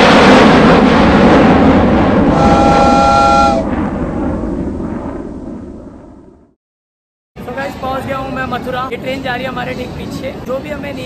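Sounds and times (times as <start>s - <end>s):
train horn chord: 2.3s - 3.6s
moving train running noise: 2.3s - 3.7s.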